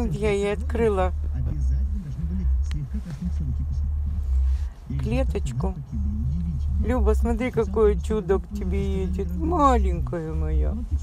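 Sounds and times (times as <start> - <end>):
car cabin rumble: 0.0 - 11.0
low voice murmuring: 0.7 - 9.6.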